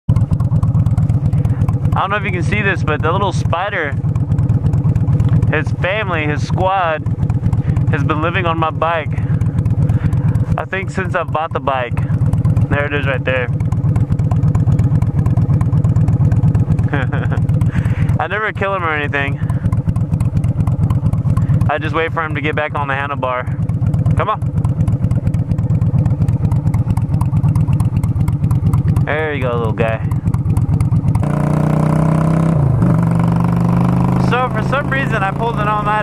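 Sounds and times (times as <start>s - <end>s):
motorcycle engine idling: 0.0s - 36.0s
burst of laughter: 16.9s - 17.8s.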